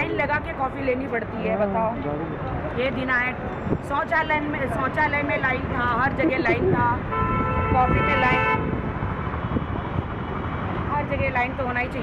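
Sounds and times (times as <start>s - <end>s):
street traffic rumble: 0.0s - 12.0s
wind buffeting microphone: 3.0s - 12.0s.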